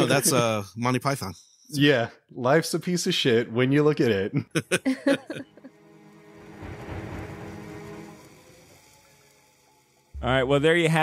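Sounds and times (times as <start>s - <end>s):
low sustained tone: 5.4s - 11.0s.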